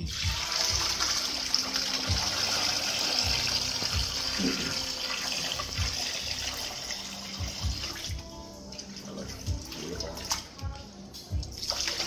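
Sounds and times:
liquid splashing: 0.0 - 12.0.

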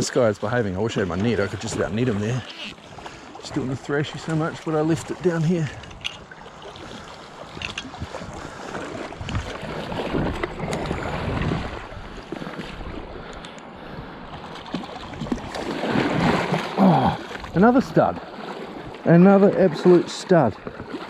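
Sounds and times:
wind buffeting: 7.5 - 14.2.

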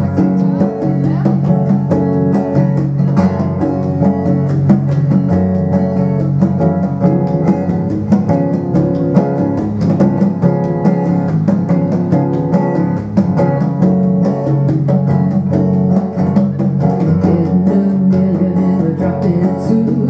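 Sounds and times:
congas: 0.0 - 20.0
electric bass: 0.0 - 20.0
strummed acoustic guitar: 0.0 - 20.0.

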